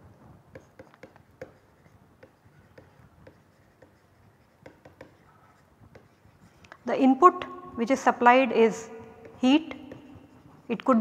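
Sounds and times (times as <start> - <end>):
stylus tapping and scratching: 0.1 - 7.9, 8.9 - 11.0.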